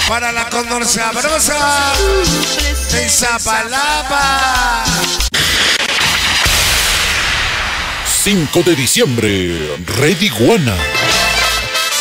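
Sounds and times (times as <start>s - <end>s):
music: 0.0s - 7.8s, 8.4s - 12.0s.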